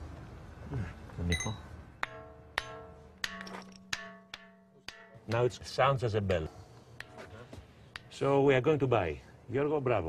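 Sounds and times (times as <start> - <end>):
hammer ringing on stone block: 1.4 - 5.5.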